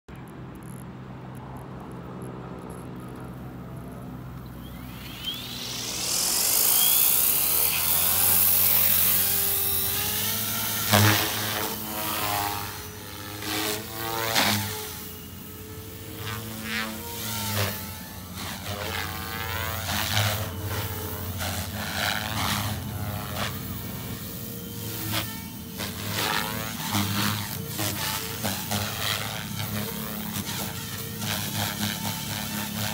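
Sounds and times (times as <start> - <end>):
helicopter rotor whine: 0.2 - 32.9.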